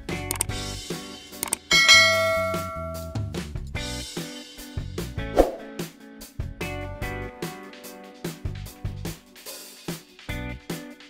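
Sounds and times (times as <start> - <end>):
background music: 0.0 - 11.0
quick mouse clicks: 0.3 - 0.5
bright bell ding: 1.7 - 3.3.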